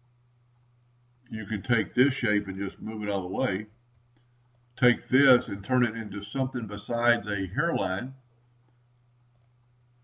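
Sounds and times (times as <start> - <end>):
low steady hum: 0.0 - 10.0
computer mouse clicks: 8.7 - 9.6.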